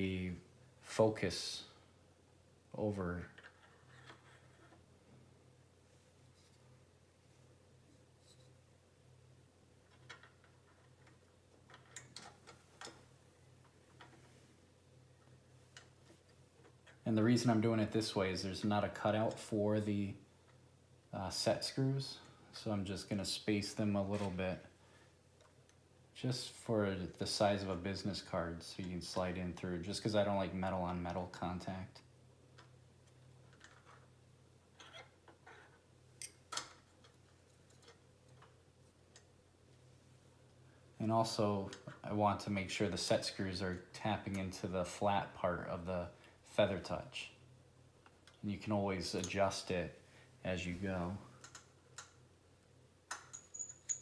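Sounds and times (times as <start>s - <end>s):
low steady hum: 0.0s - 54.0s
small metal parts clicking: 53.1s - 54.0s.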